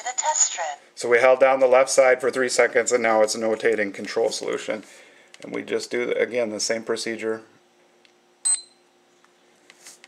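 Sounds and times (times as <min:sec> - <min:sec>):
glucose meter beep: 0:08.4 - 0:08.8
faint handling sounds: 0:09.6 - 0:10.0.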